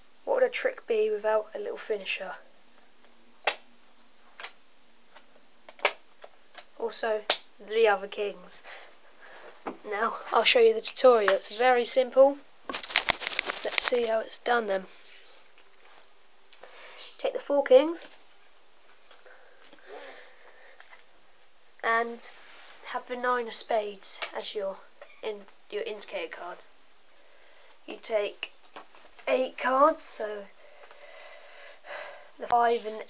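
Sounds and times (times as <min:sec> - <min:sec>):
faint breath: 0:08.6 - 0:09.6, 0:16.6 - 0:17.2, 0:19.2 - 0:21.0, 0:27.1 - 0:27.8, 0:30.6 - 0:32.4
playing cards handled: 0:12.7 - 0:14.2.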